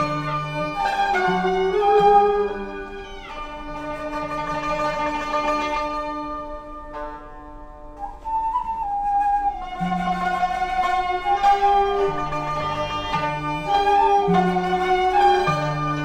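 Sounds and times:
instrumental ensemble music: 0.0s - 16.0s.

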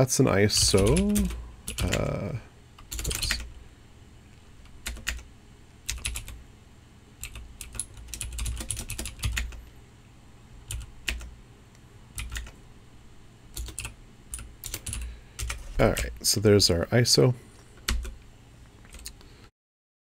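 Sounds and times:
typing on computer keyboard: 0.6s - 2.1s, 2.8s - 3.5s, 4.7s - 5.3s, 5.9s - 6.4s, 7.2s - 9.6s, 10.7s - 11.3s, 12.2s - 12.6s, 13.6s - 15.7s, 17.8s - 18.2s.

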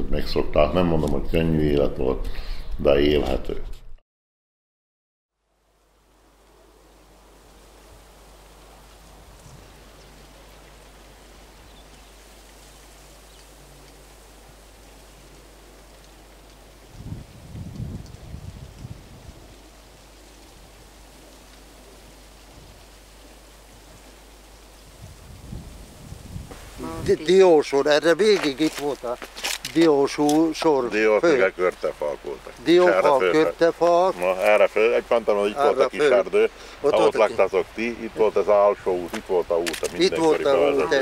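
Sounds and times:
steady hiss: 5.4s - 41.0s
wind rumbling on microphone: 7.8s - 27.6s.

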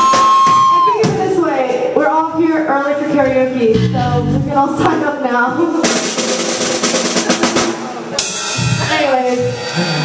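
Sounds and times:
snare and bass drum roll: 5.8s - 9.9s.

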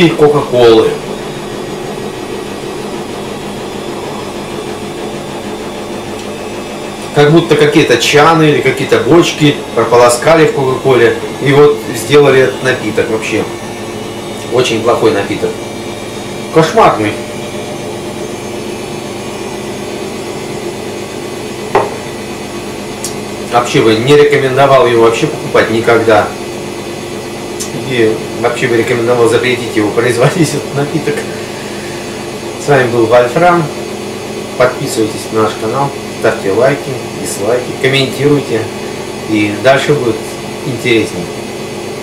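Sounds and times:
low mechanical hum: 0.0s - 42.0s
glass set down on countertop: 21.8s - 22.0s.

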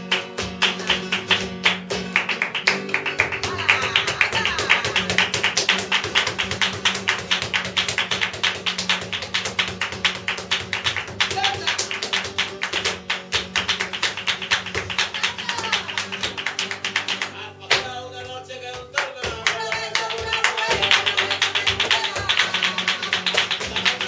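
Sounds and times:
acoustic guitar: 0.0s - 24.0s
hand clapping: 0.0s - 24.0s
percussive dance steps: 0.0s - 24.0s.

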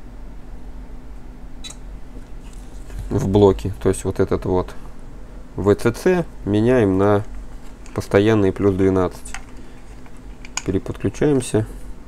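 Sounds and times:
low electrical hum: 0.0s - 12.0s
sharp click: 1.6s - 1.9s.

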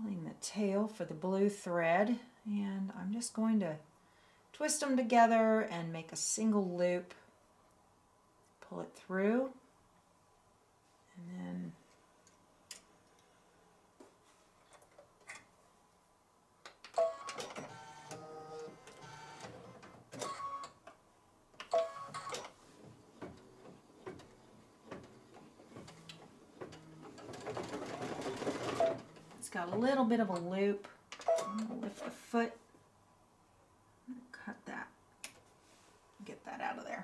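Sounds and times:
embroidery machine stitching: 21.7s - 29.4s.

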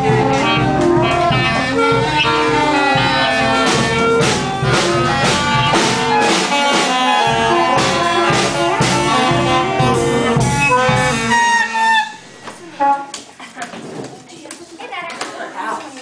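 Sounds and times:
concert band playing: 0.0s - 13.2s.

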